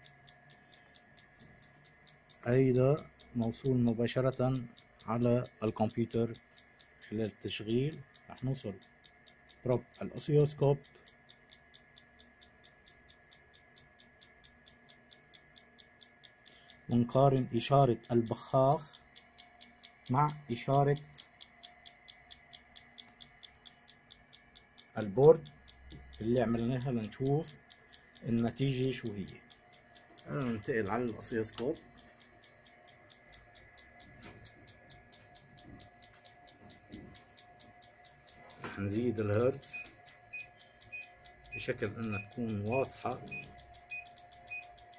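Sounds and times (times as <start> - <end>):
faint steady whine: 0.0 - 44.9
fuel injector ticking: 0.0 - 44.9.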